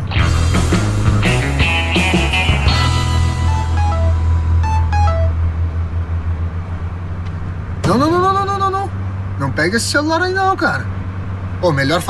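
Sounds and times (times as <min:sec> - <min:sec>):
car road and engine drone: 0:00.0 - 0:12.0.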